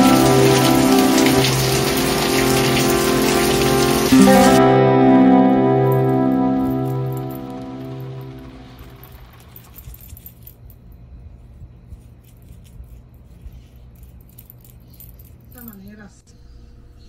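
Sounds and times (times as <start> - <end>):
guitar music: 0.0 - 9.2.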